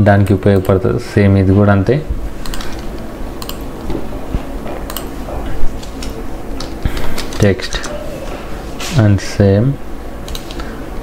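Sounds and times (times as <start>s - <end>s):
computer keyboard clicking: 2.4s - 3.7s, 4.9s - 5.1s, 10.3s - 10.6s.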